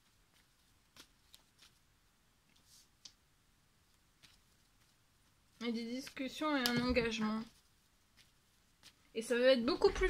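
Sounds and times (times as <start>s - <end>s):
soft rustle: 0.0s - 10.0s.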